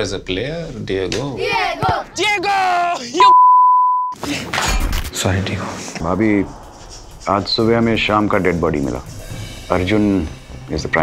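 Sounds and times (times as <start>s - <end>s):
person shouting: 2.2s - 3.3s
censor bleep tone: 3.2s - 4.2s
noisy rush: 5.0s - 9.4s.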